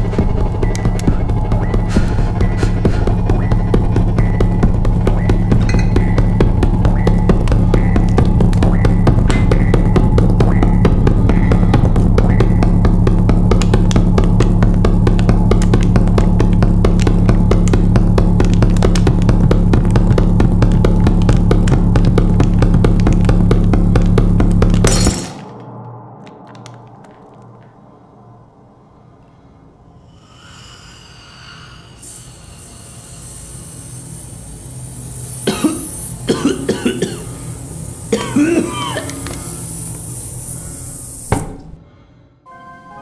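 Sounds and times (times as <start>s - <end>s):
music with heavy drums and bass: 0.0s - 25.3s, 34.7s - 40.3s.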